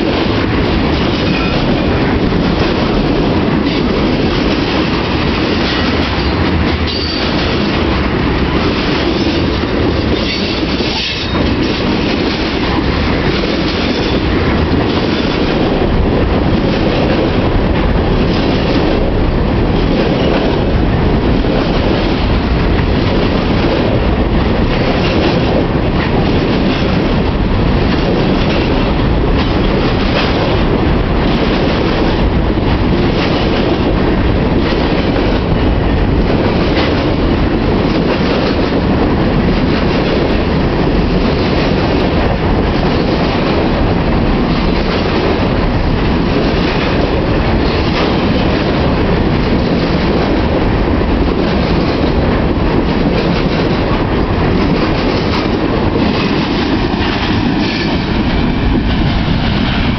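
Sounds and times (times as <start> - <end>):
freight cars rumbling on rails: 0.0 - 59.9
rail joints clickety-clack: 0.0 - 59.9.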